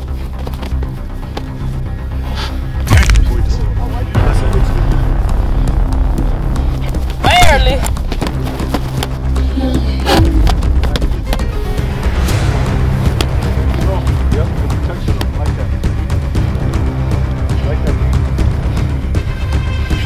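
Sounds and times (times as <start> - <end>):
background music with bass beat: 0.0 - 20.0.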